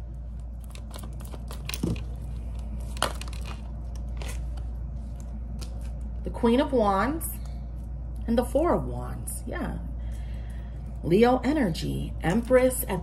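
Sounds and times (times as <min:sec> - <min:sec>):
steady low hum: 0:00.0 - 0:13.0
cards being shuffled: 0:00.5 - 0:06.1.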